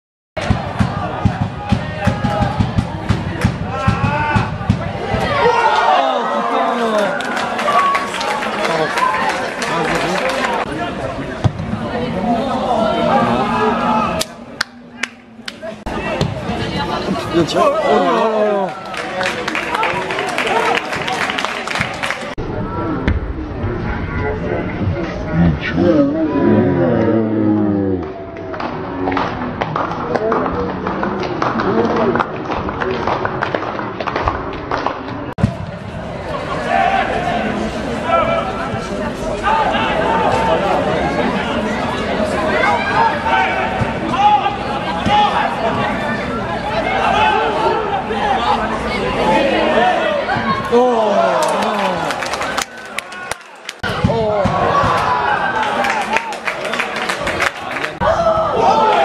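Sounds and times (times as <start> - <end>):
people shouting and calling out: 0.4 - 18.9, 36.2 - 56.3, 58.0 - 59.0
steady background noise: 0.4 - 59.0.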